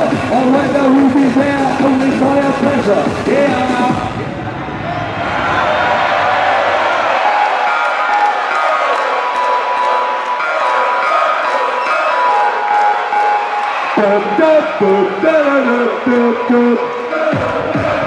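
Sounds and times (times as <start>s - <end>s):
crowd cheering: 0.0s - 18.0s
electronic dance music: 0.0s - 18.0s.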